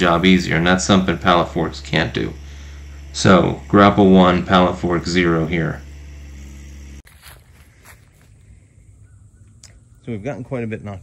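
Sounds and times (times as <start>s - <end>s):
footsteps in grass and leaves: 5.9s - 8.8s
soft crunches: 7.0s - 8.5s.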